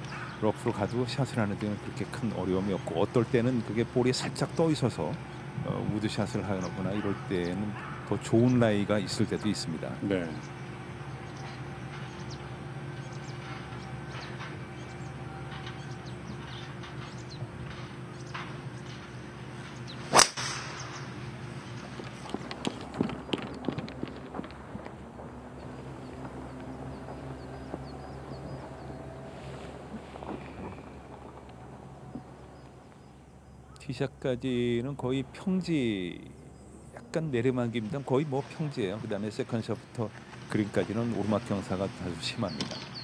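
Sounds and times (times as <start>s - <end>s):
steady low hum: 0.0s - 43.0s
golf driver striking ball: 20.0s - 21.8s
short hissing of ball: 20.1s - 20.8s.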